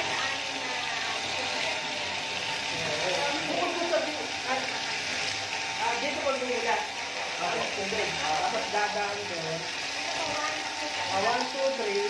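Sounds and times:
people talking: 0.0 - 2.0.

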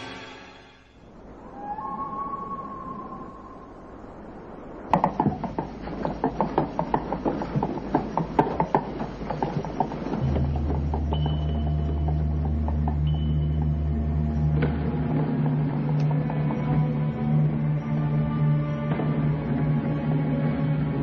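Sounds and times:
low rumble: 0.0 - 21.0
plastic tricycle wheels clattering: 5.0 - 13.1
sustained musical drone: 10.1 - 21.0.

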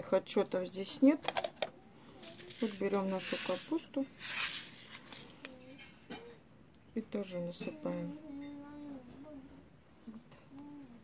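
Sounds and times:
paper seed packet rustling: 2.2 - 5.5.

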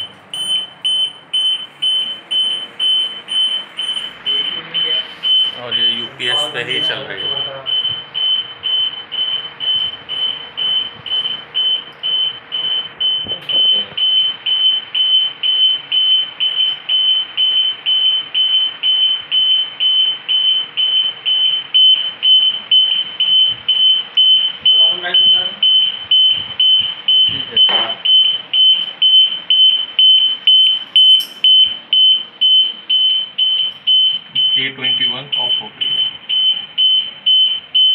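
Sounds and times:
high-pitched alarm beeps: 0.0 - 37.9.

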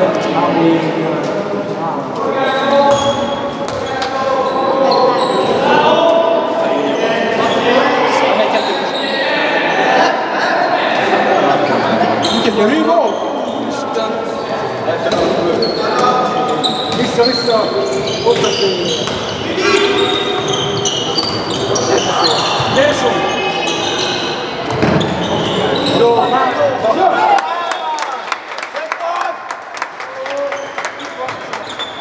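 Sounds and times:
shoes squeaking: 12.2 - 26.6.

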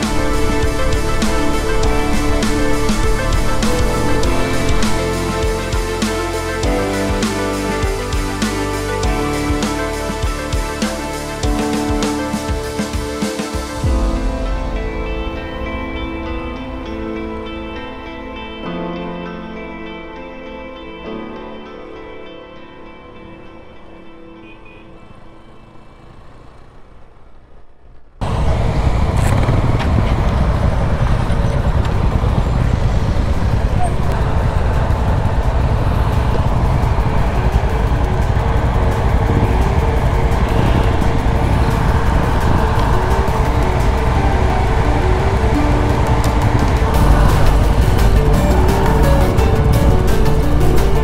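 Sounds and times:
background music: 0.0 - 26.6, 28.2 - 51.0
motorcycle engine and wind rumble: 25.4 - 51.0.

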